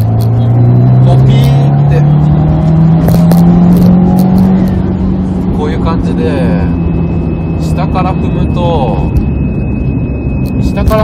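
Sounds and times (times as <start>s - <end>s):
car engine accelerating hard: 0.0s - 9.6s.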